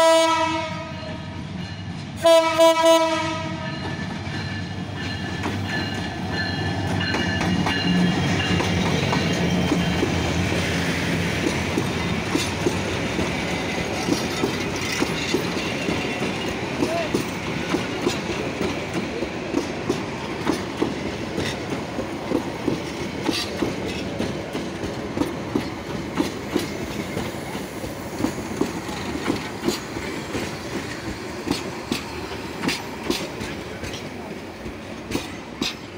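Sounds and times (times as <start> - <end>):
locomotive engine humming: 0.1 - 35.9
train wheels clickety-clack: 0.8 - 35.9.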